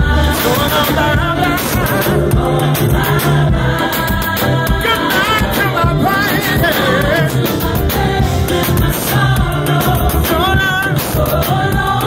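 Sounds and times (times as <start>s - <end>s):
gospel band with singing: 0.0s - 12.0s.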